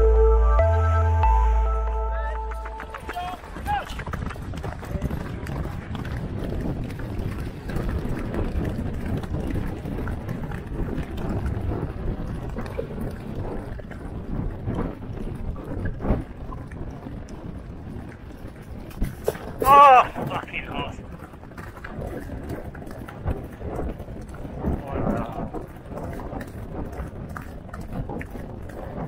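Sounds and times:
horses galloping on grass: 0:02.5 - 0:29.0.

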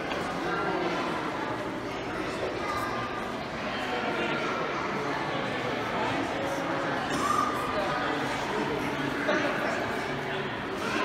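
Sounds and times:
crowd chatter in large hall: 0:00.0 - 0:11.0.

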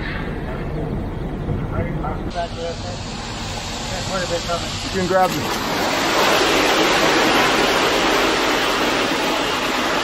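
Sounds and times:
steady hiss: 0:01.8 - 0:10.0.

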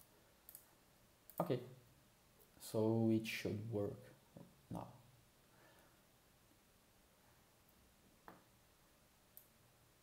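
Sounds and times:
computer clicks: 0:00.4 - 0:00.7.

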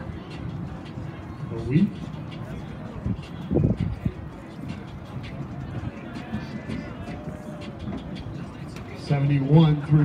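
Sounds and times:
faint distant voices: 0:00.0 - 0:10.0
outdoor background noise: 0:00.0 - 0:10.0.

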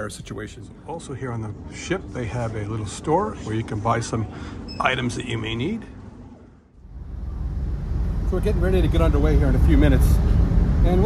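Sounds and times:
low background rumble: 0:04.2 - 0:11.0.

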